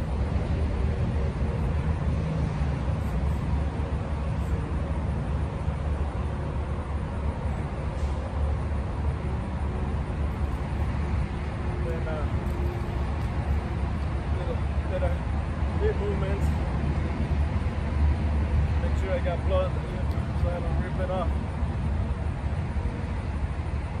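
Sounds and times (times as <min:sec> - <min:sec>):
highway traffic rumble: 0:00.0 - 0:24.0.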